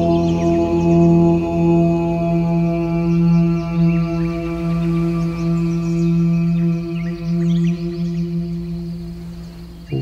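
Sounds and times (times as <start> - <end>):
low chanted tone: 0.0 - 10.0
sustained drone: 0.0 - 10.0.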